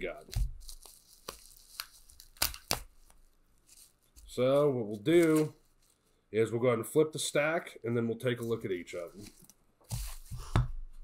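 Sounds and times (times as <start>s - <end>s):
bubble wrap crinkling: 0.0s - 6.1s.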